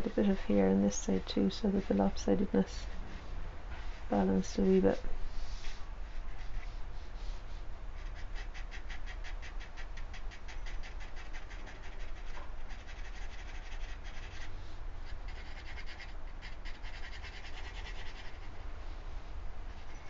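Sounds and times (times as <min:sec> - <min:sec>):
pencil scratching on paper: 0:08.0 - 0:14.5, 0:15.3 - 0:18.5.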